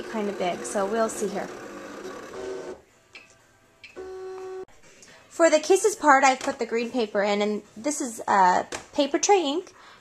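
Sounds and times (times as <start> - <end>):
cutting machine tone: 0.0 - 2.8.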